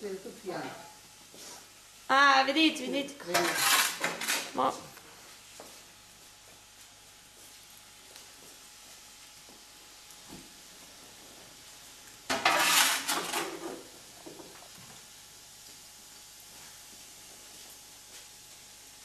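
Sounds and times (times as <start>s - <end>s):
metal rake scraping embers: 3.2s - 4.7s, 12.3s - 13.9s.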